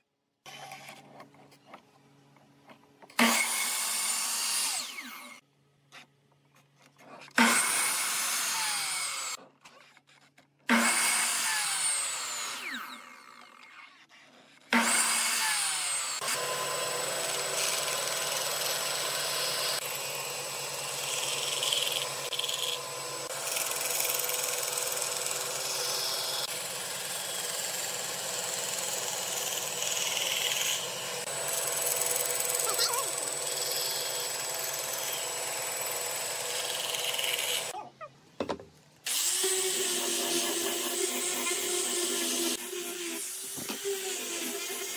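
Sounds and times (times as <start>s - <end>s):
miter saw cutting wood: 3.2s - 5.4s, 7.3s - 9.4s, 10.7s - 37.8s, 39.1s - 44.9s.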